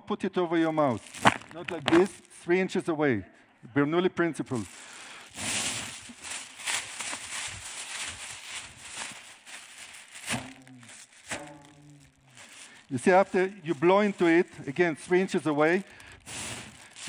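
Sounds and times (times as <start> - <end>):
plastic balloon crinkling: 0.6 - 2.5, 4.4 - 17.0
short voice sounds: 10.3 - 12.3.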